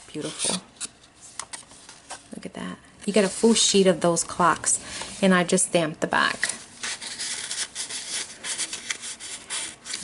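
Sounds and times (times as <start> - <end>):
paper cards scraping together: 0.1 - 2.3, 6.4 - 10.0.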